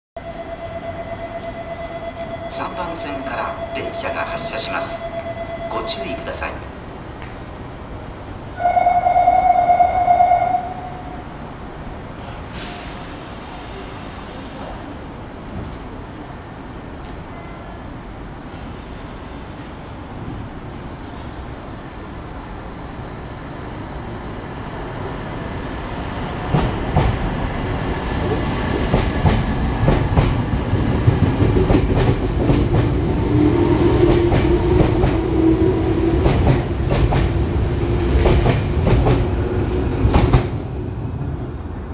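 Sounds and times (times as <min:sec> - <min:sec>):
train wheels clacking over joints: 0:26.5 - 0:27.4, 0:28.2 - 0:33.0, 0:36.2 - 0:37.4.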